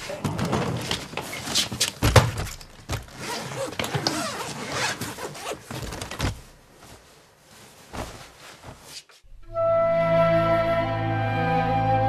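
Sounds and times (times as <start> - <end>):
fabric rustling: 0.0 - 9.3
suitcase zipper opening: 2.9 - 6.4
soft thumps of clothes: 4.9 - 9.2.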